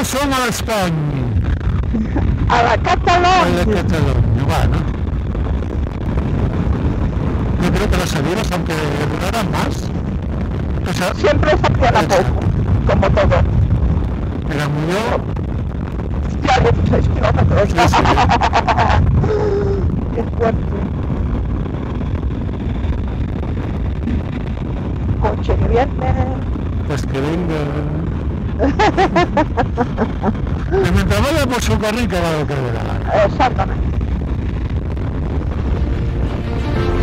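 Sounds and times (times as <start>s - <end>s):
motorcycle engine rumble: 0.0s - 37.0s
road noise: 0.0s - 37.0s
wind buffeting microphone: 0.0s - 37.0s.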